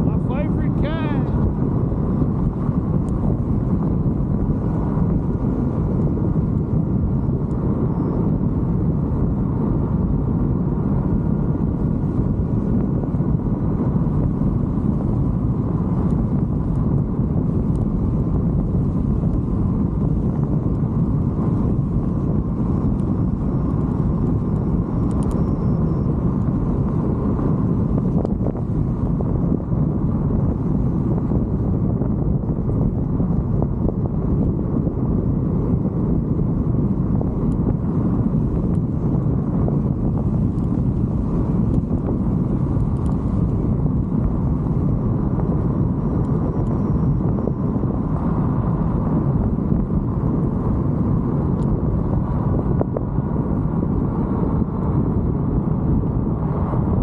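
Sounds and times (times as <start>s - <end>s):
faint steady whine: 0.0s - 57.0s
wind on microphone: 0.0s - 57.0s.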